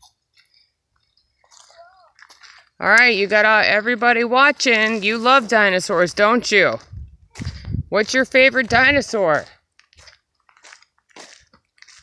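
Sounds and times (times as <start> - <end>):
footsteps crunching on leaf litter: 1.4 - 12.0.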